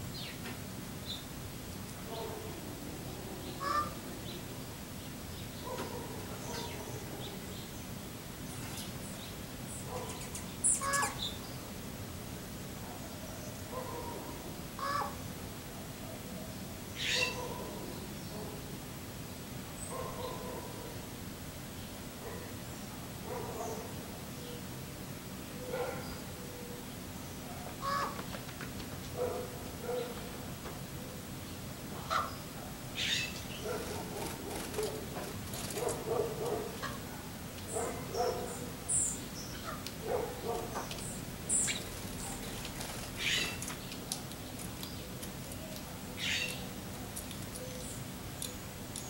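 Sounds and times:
raven cawing: 3.6 - 4.0, 14.8 - 15.2, 27.8 - 28.2, 32.0 - 32.4.

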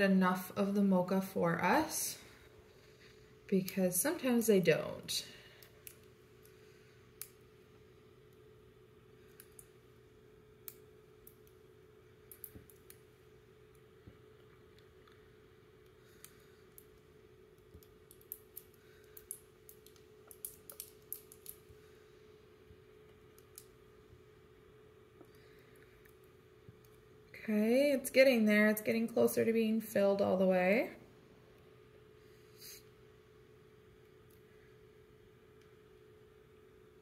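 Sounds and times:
faint steady hum: 0.0 - 37.0.

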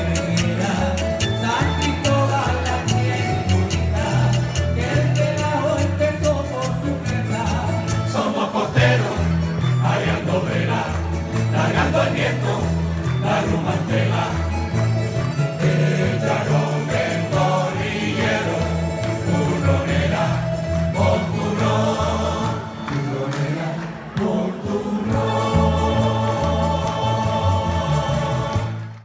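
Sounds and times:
mixed choir singing: 0.0 - 5.8, 7.4 - 29.0
strummed guitars and lutes: 0.0 - 29.0.

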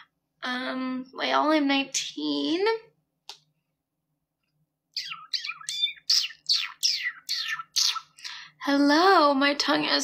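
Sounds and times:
high-pitched chirping calls: 4.9 - 8.2.

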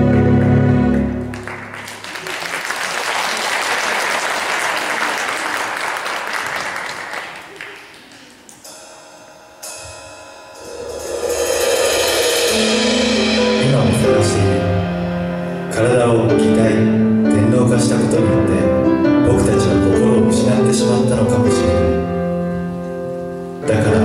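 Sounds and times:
sustained music: 0.0 - 2.1, 8.6 - 24.0
audience applauding: 0.0 - 8.6.

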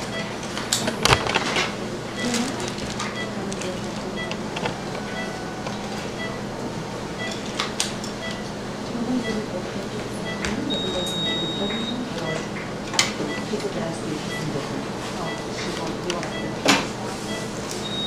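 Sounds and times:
equipment hum: 0.0 - 18.0
patient monitor beeping: 0.0 - 18.0
long high steady tone: 4.1 - 7.3, 17.3 - 18.0.

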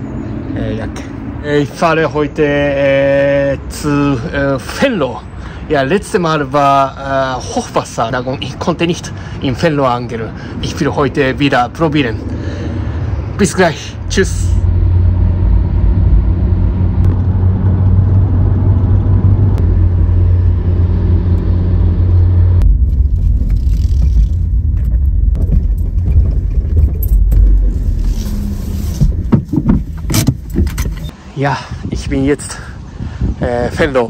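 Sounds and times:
car engine and road drone: 0.0 - 31.4.

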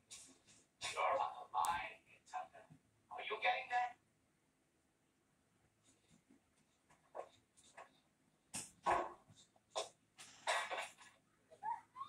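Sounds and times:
man speaking through tv speaker: 0.8 - 4.0.

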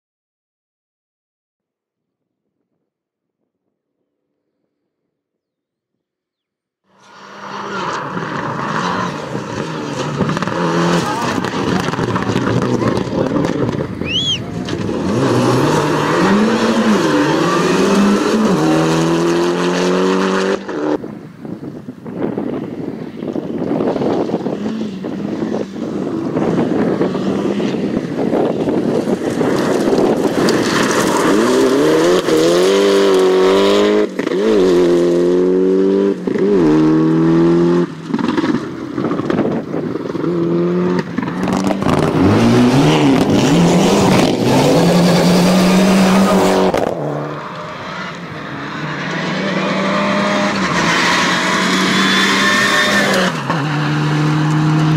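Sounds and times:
rally car engines revving: 6.9 - 21.1, 22.2 - 54.9
tyres on gravel: 7.3 - 18.6, 26.7 - 34.4.

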